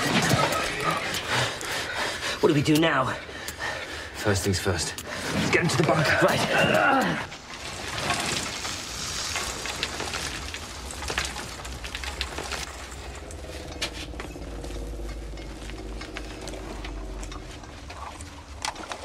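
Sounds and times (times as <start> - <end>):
low rumble: 9.4 - 19.0
faint low drone: 12.7 - 19.0.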